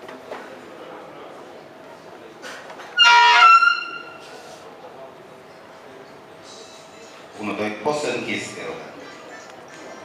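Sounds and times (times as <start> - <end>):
shrill electronic squeal: 3.0 - 4.2.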